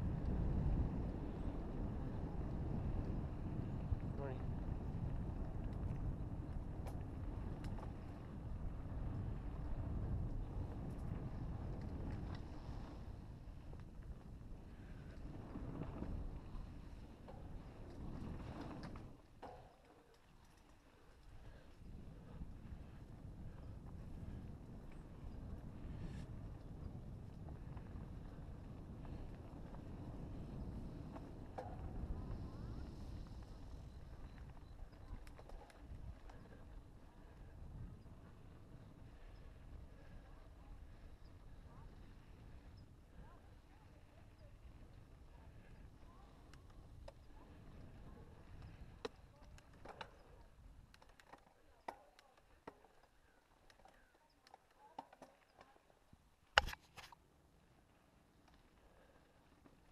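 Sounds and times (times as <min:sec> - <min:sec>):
wind rumble on microphone: 0:00.0 - 0:19.3, 0:21.2 - 0:51.0
bike clicks and rattles: 0:00.1 - 0:57.3.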